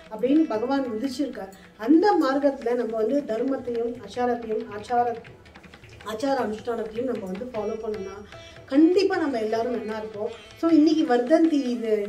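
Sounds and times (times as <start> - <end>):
woman speaking: 0.0 - 5.3, 6.0 - 12.0.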